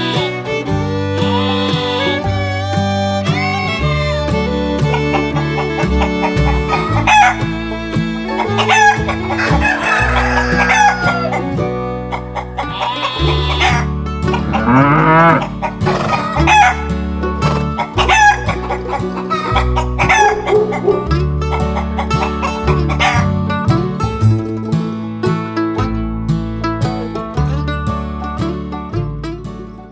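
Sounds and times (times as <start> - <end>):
hens clucking: 0.0 - 23.6
banjo country music: 0.0 - 29.9
rooster crowing: 8.6 - 11.4, 12.6 - 13.8, 14.5 - 16.8, 18.0 - 21.0.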